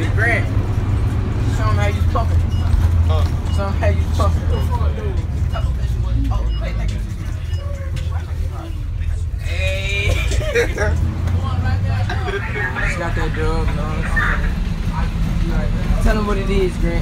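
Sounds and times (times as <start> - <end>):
bus engine droning: 0.0 - 17.0
boys talking: 1.4 - 17.0.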